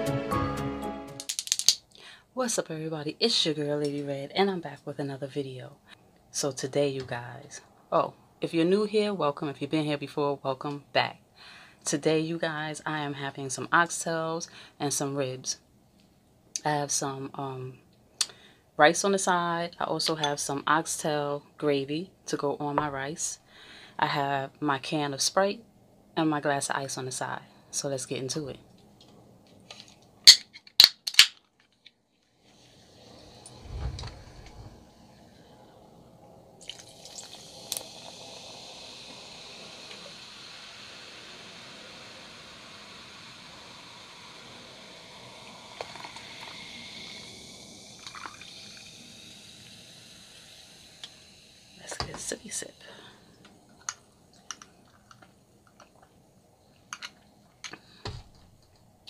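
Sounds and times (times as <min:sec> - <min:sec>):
can cracked open: 0:01.2 - 0:01.8, 0:30.3 - 0:31.5
soda fizzing as poured: 0:36.6 - 0:53.1.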